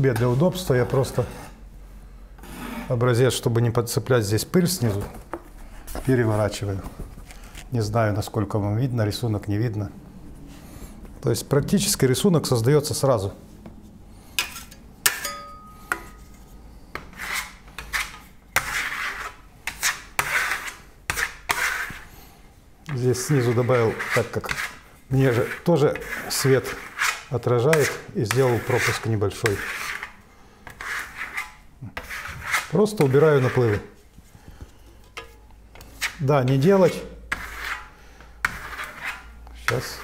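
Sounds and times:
trowel scraping across board: 0:02.4 - 0:03.0, 0:16.0 - 0:22.1, 0:23.1 - 0:34.0, 0:35.0 - 0:40.0
brief metallic ring: 0:15.2 - 0:16.0.

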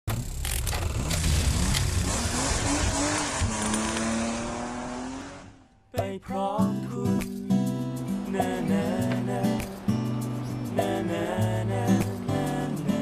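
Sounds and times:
race car engine swooping: 0:00.8 - 0:05.7.

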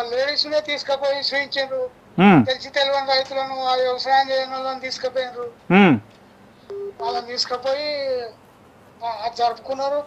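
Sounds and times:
caller's voice over phone line: 0:02.2 - 0:02.5, 0:05.7 - 0:06.0, 0:06.9 - 0:07.5
vocal sound rising and falling: 0:02.2 - 0:02.5, 0:05.7 - 0:06.0
steady telephone tone: 0:06.7 - 0:07.2.

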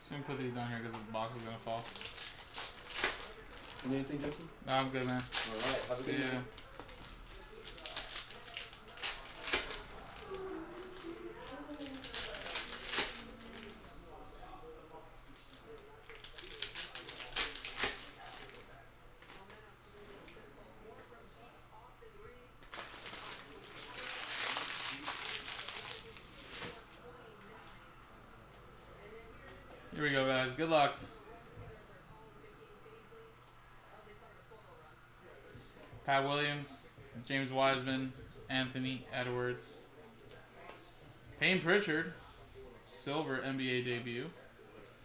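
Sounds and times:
foil wrappers crinkling: 0:01.2 - 0:13.9, 0:15.4 - 0:19.5, 0:22.6 - 0:27.0.

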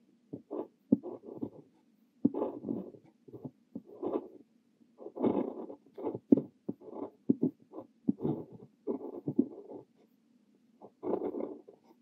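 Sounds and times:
fountain pen scratching on paper: 0:00.3 - 0:04.4, 0:05.0 - 0:10.1, 0:10.8 - 0:12.0.

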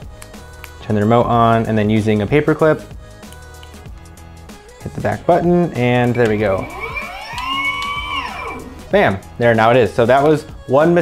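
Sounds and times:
electric motor whining: 0:06.1 - 0:08.9.

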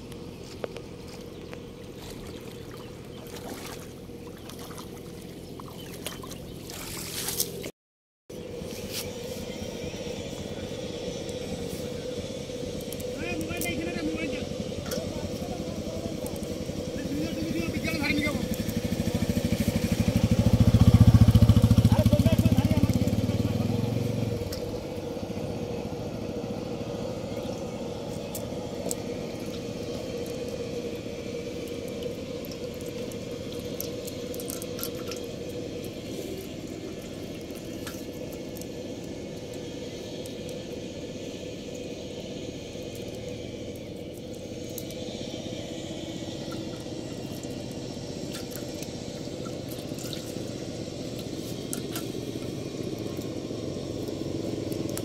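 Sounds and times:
small fish splashing: 0:02.0 - 0:07.7, 0:31.6 - 0:38.9, 0:46.4 - 0:50.7
fishing net rustling and clicking: 0:05.9 - 0:07.7.

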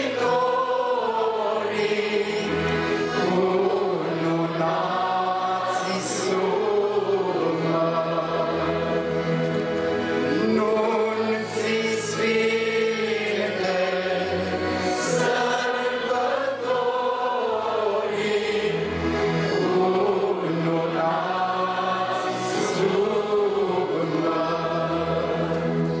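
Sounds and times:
choir singing a hymn: 0:00.0 - 0:26.0.

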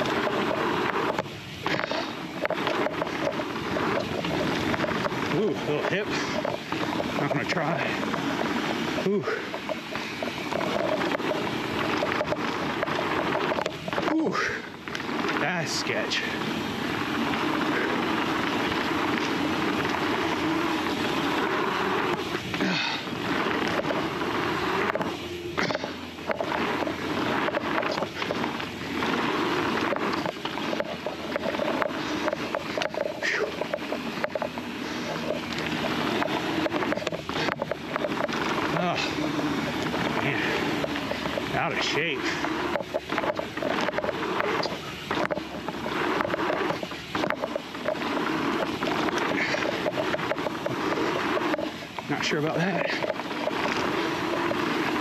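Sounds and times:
bike knocking and rattling: 0:00.0 - 0:55.0.

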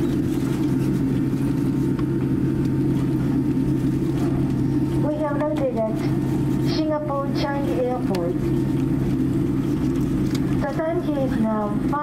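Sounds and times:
low aircraft cabin hum: 0:00.0 - 0:12.0
woman speaking over cabin pa: 0:05.0 - 0:08.4, 0:10.6 - 0:12.0.

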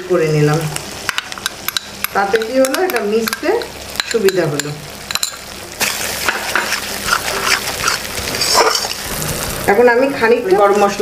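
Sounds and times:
spice paste frying: 0:00.0 - 0:11.0
metal spatula scraping pan: 0:06.2 - 0:09.0.

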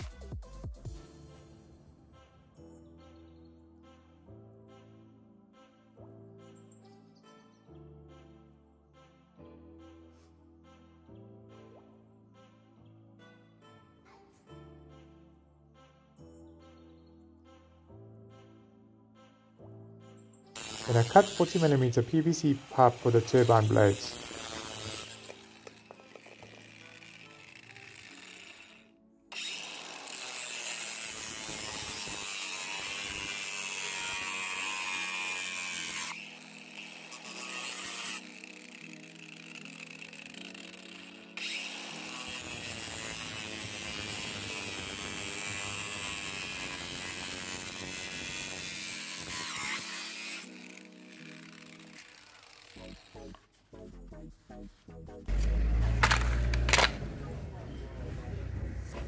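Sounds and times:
angle grinder cutting plastic pipe: 0:19.2 - 0:53.4, 0:55.3 - 0:59.0.

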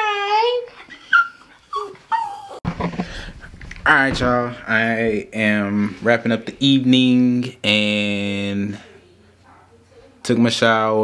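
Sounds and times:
small dog whining: 0:00.8 - 0:02.6
low rumble: 0:03.1 - 0:05.3.

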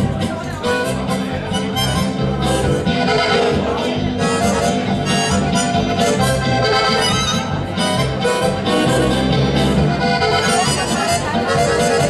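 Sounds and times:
button accordion: 0:00.0 - 0:12.0
guitar: 0:00.0 - 0:12.0
harmonica: 0:00.0 - 0:12.0
steady rhythmic bass: 0:00.0 - 0:12.0.

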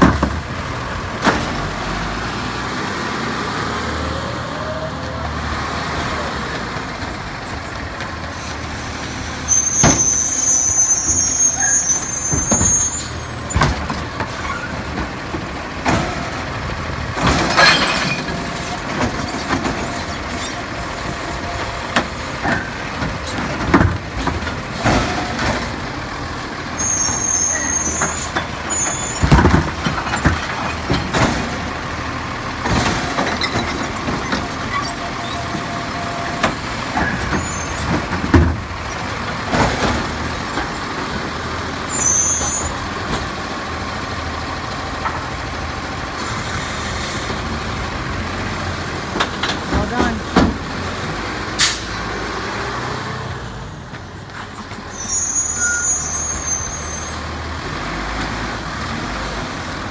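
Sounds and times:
bangs and clatter of cart: 0:00.0 - 0:02.0, 0:11.8 - 0:26.0, 0:26.8 - 0:41.0, 0:49.0 - 0:50.9
diesel truck engine: 0:00.0 - 0:59.9.

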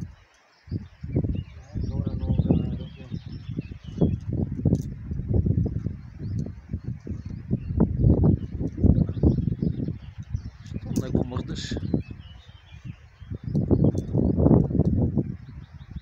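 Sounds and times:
birds chirping: 0:00.0 - 0:16.0
wind buffeting microphone: 0:00.0 - 0:16.0.

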